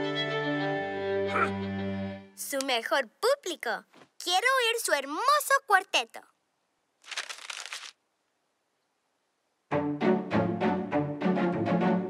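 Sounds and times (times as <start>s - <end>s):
brief rustle: 7.0s - 8.0s
string quartet playing: 9.8s - 12.0s.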